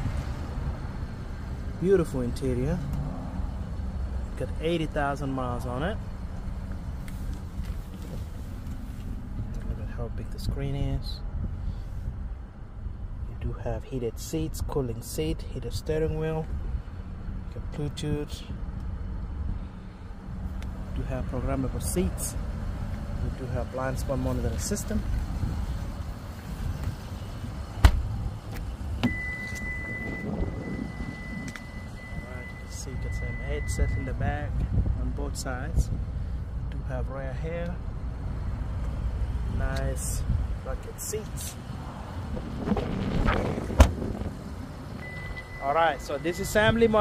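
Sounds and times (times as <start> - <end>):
low cabin rumble and hum: 0.0 - 47.0
car door shutting: 27.8 - 32.2, 42.4 - 44.4
faint steady tone: 29.0 - 34.4, 45.0 - 47.0.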